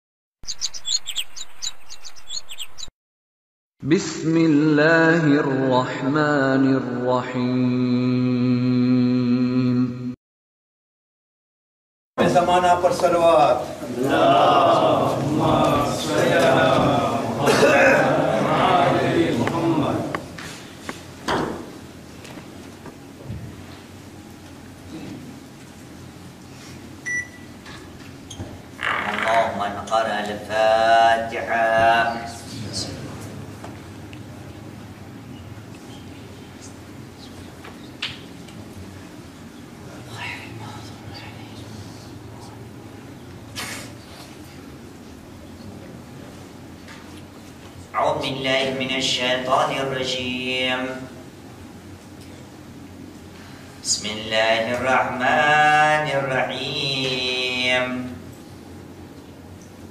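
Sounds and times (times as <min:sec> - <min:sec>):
bird chirping: 0:00.4 - 0:02.9
low room hum: 0:12.2 - 0:59.9.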